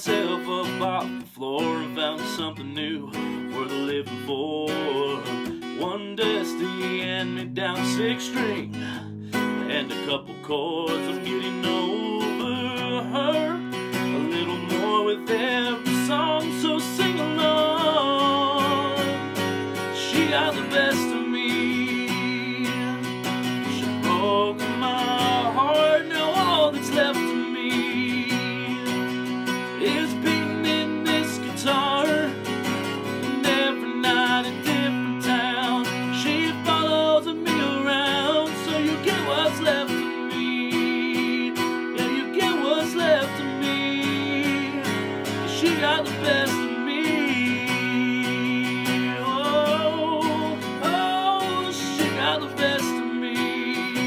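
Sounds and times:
man singing country song: 0.0s - 54.0s
strummed acoustic guitar: 0.0s - 54.0s.

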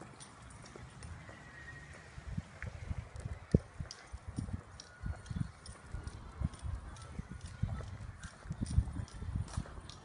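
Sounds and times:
footsteps on pavement: 0.0s - 10.0s.

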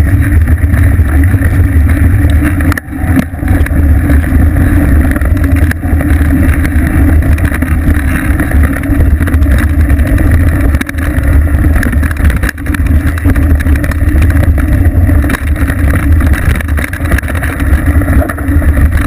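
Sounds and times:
bike rolling over dirt trail: 0.0s - 19.0s
wind buffeting microphone: 0.0s - 19.0s.

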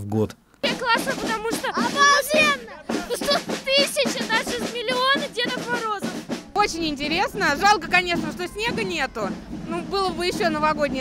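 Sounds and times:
boy talking: 0.6s - 6.3s.

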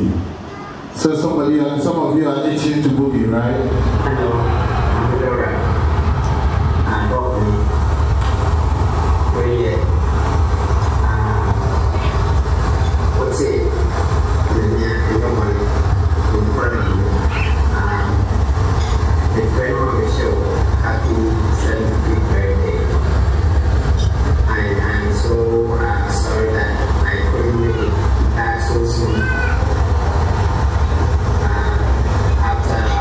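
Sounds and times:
loud low rumble: 2.1s - 33.0s.

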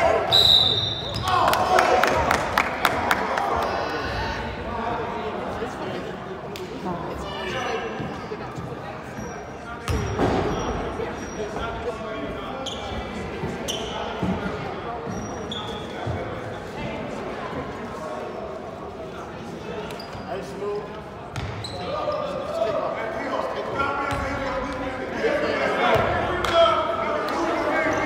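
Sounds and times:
voices echoing in a gym: 0.0s - 28.0s.

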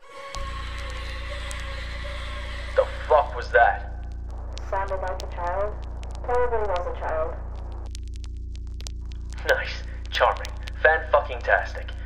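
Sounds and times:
low droning hum: 0.0s - 12.0s
static hiss: 0.3s - 12.0s
man speaking: 2.8s - 3.9s, 9.4s - 12.0s.

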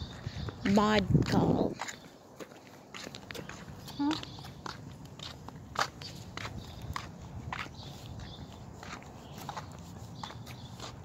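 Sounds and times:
footsteps on concrete: 0.0s - 11.0s.

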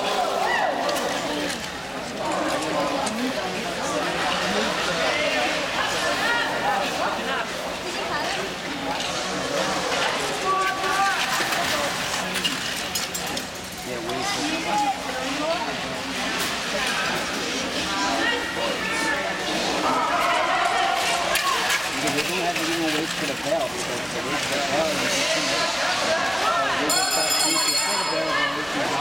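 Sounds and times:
spectators talking and calling out: 0.0s - 29.0s.

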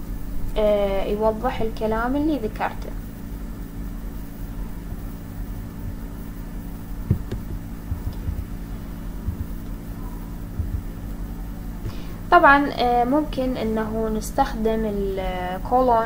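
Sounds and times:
low electrical hum: 0.0s - 16.0s
faint rumble: 1.7s - 15.0s.

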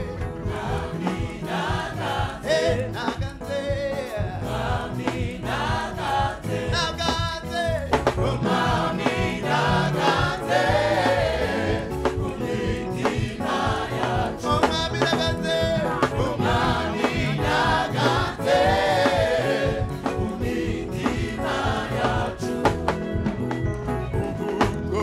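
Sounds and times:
drum kit beat: 0.0s - 25.0s
gospel choir singing: 0.0s - 25.0s
live band playing: 0.0s - 25.0s.

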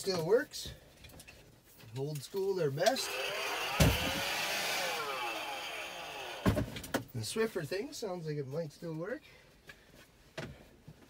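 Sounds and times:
small electric motor whirring: 2.8s - 6.6s.

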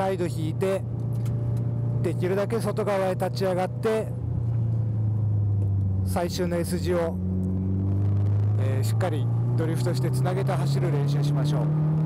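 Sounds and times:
car engine low drone: 0.0s - 12.0s.

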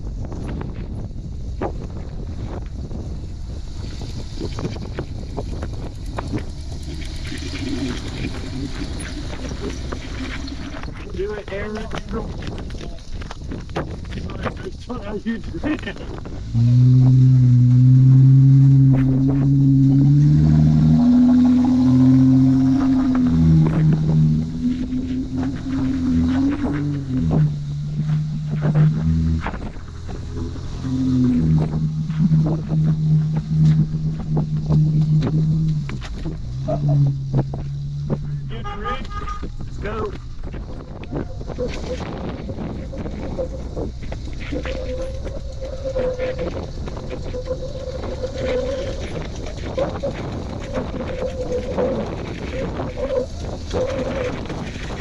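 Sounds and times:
engine revving under load: 15.9s - 55.0s.

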